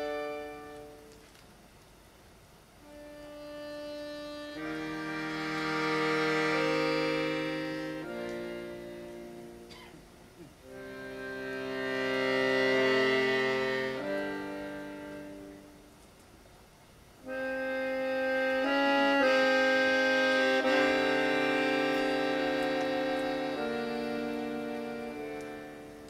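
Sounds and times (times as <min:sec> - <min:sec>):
accordion playing chords: 0:00.0 - 0:01.2, 0:02.3 - 0:16.0, 0:17.0 - 0:26.0.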